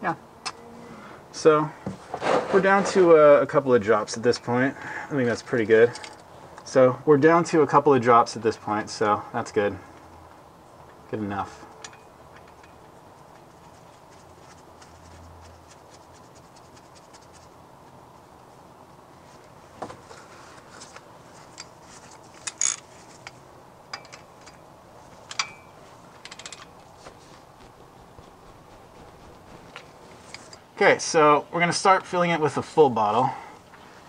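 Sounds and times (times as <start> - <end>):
scrapes and rubbing: 2.0 - 3.1, 13.2 - 17.6, 19.2 - 23.4, 25.0 - 30.6
light clicks of parts: 5.8 - 6.7, 11.7 - 13.5, 20.6 - 27.2.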